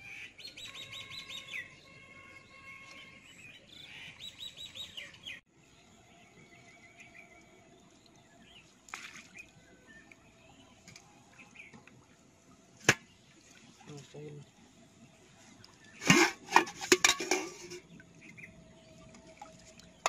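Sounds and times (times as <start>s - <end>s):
birds singing and calling: 0.0s - 12.1s, 17.3s - 20.0s.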